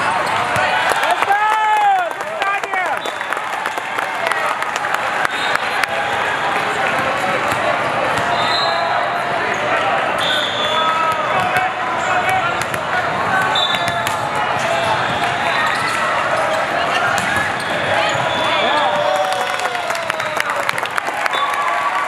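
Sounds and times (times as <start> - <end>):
din of many voices: 4.1 - 19.0
sharp volleyball hits: 6.9 - 8.4, 10.2 - 19.1
sneakers squeaking on court: 13.4 - 19.0.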